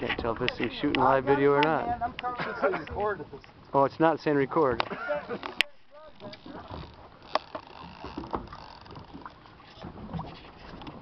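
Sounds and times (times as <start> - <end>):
boat at sea ambience: 0.0 - 11.0.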